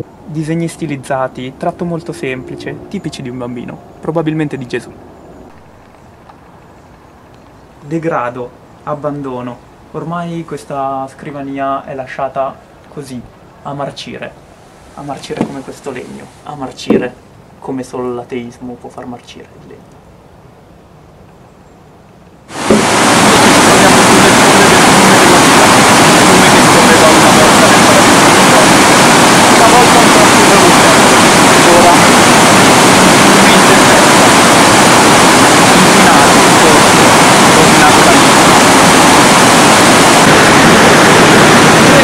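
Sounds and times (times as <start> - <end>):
river water pouring over weir: 22.5 - 42.0.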